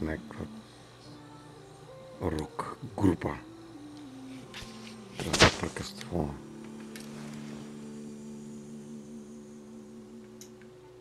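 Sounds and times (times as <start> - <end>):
low multi-pitched hum: 0.0 - 11.0.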